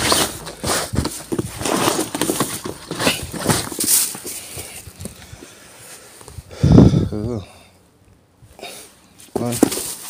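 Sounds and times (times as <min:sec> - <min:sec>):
plastic bags rustling: 0:00.0 - 0:06.0.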